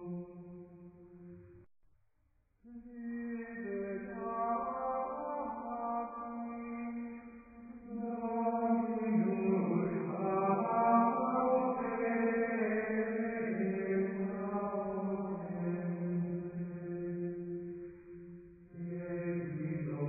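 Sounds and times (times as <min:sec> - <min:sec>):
person chanting slowly: 0:00.0 - 0:01.3, 0:02.6 - 0:20.0.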